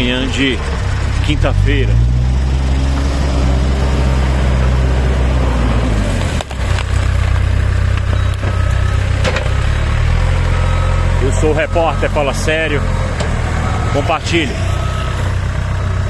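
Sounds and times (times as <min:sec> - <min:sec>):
diesel engine running: 0:00.0 - 0:16.0
brush and branches cracking: 0:06.0 - 0:08.5.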